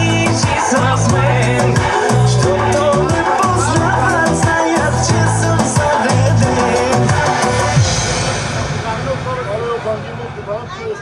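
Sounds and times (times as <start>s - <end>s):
women and children talking: 10.6s - 11.0s.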